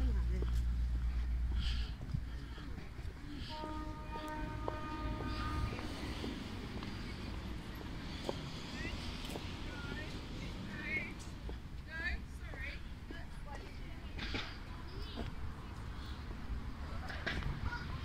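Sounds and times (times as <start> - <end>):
distant voices: 0.0 - 18.0.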